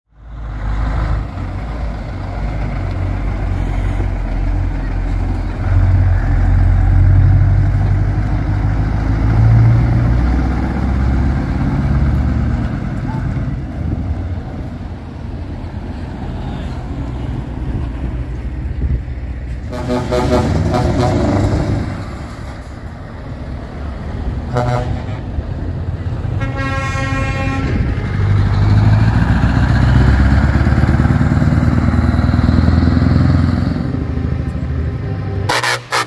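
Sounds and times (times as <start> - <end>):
diesel trucks driving past: 0.1 - 36.0.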